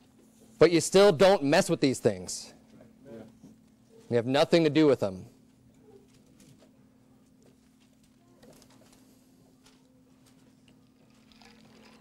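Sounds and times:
faint clicks and rustles: 5.4 - 12.0.

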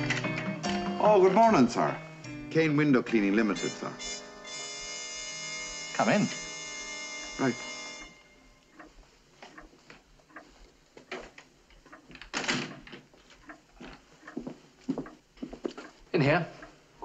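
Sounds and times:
footsteps: 8.4 - 16.8.

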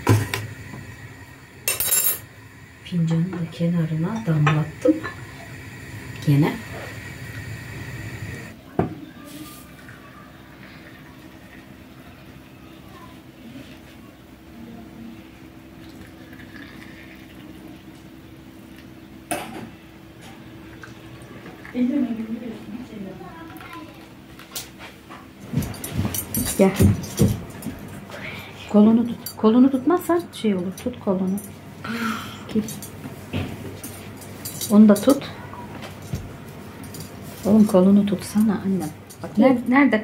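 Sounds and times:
coffee pouring into cups: 0.0 - 8.6, 9.6 - 12.4, 15.7 - 18.0, 20.4 - 22.4
low steady hum: 0.0 - 9.2
voices: 2.8 - 15.4, 37.4 - 40.0.

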